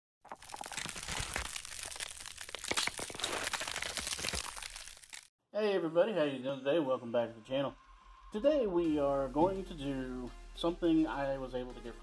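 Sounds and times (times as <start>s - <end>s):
crinkling and crackling: 0.2s - 5.3s
sharp cracks: 0.3s - 5.3s.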